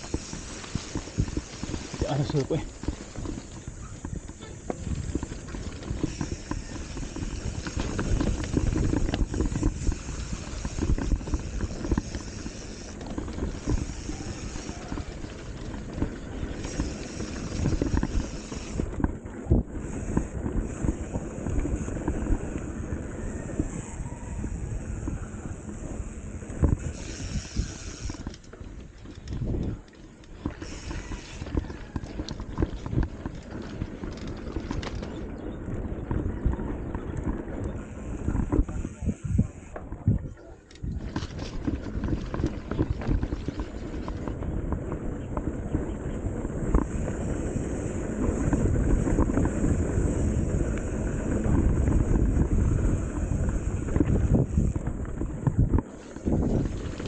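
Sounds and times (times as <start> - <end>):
bike knocking and rattling: 0.0 - 57.0
bike tyre rumble on dirt: 0.0 - 57.0.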